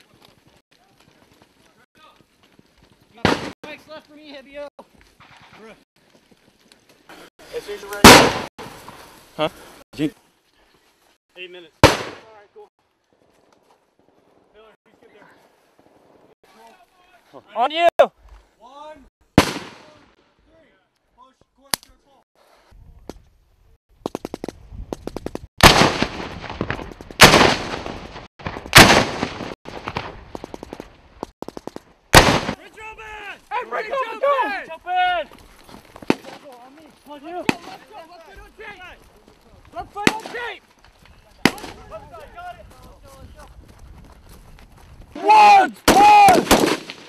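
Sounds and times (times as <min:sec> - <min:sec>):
men shouting: 0:32.7 - 0:35.3, 0:45.2 - 0:46.4.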